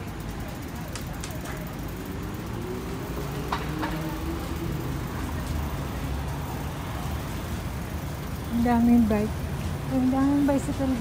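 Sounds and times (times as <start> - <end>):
vehicle passing by: 1.8 - 11.0.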